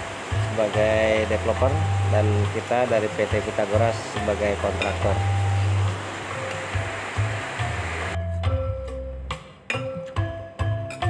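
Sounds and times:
background music with sharp notes: 0:00.0 - 0:11.0.

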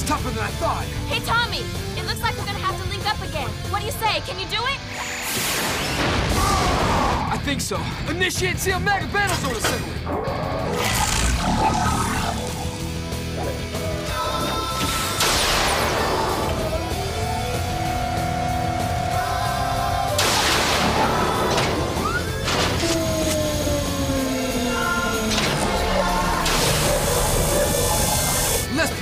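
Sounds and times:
music: 0:00.0 - 0:29.0.

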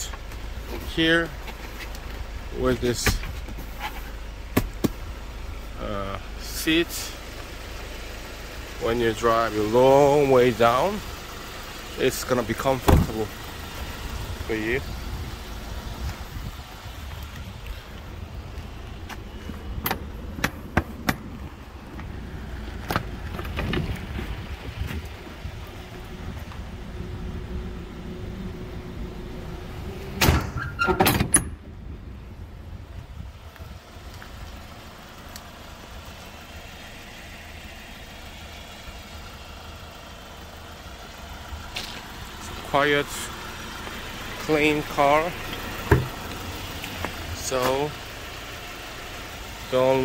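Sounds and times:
low steady rumble: 0:00.0 - 0:50.0
truck cargo door latches clicking: 0:30.2 - 0:31.6.

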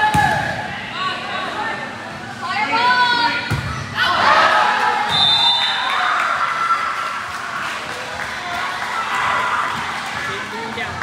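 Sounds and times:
people shouting and cheering: 0:00.0 - 0:01.2, 0:02.5 - 0:10.8.

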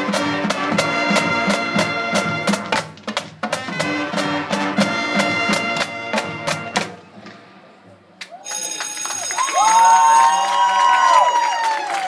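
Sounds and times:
audience clapping: 0:08.2 - 0:12.0
long high cheers: 0:08.3 - 0:12.0.

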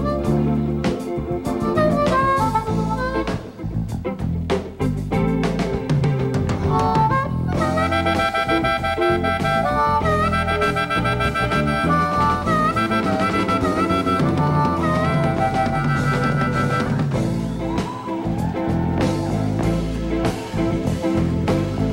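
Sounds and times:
blues harmonica soloing: 0:00.0 - 0:04.0, 0:06.5 - 0:18.2
drum kit: 0:00.0 - 0:21.9
electric bass: 0:00.0 - 0:21.9.

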